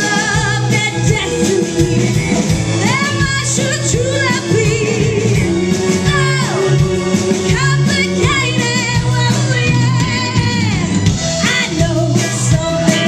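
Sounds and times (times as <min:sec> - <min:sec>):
live band playing: 0:00.0 - 0:13.0
women singing in harmony: 0:02.8 - 0:13.0.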